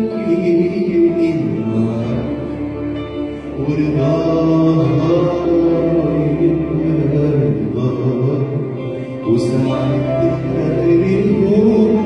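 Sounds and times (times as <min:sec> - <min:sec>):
male singer holding a note: 0:00.0 - 0:12.0.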